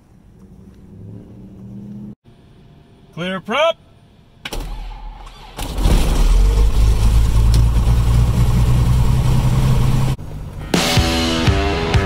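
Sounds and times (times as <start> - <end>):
piston aircraft engine running: 5.7 - 12.0.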